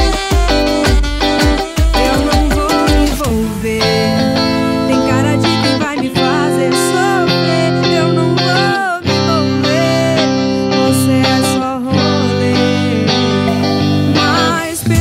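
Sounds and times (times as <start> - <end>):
backing track music: 0.0 - 15.0
electric guitar lead line: 0.0 - 15.0.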